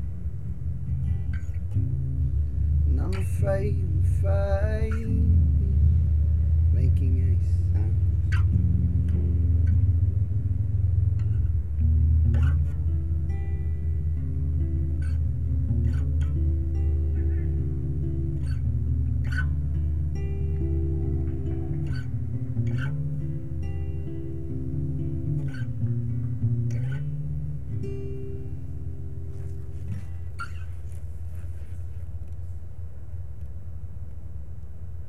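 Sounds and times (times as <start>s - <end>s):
solo acoustic guitar: 0.0s - 35.0s.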